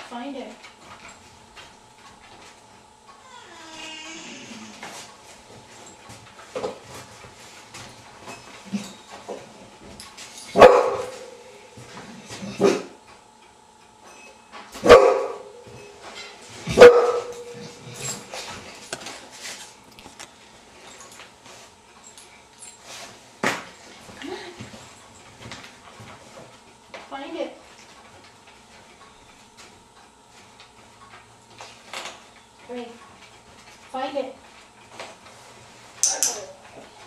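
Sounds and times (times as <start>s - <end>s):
dog whimpering: 3.2s - 4.8s.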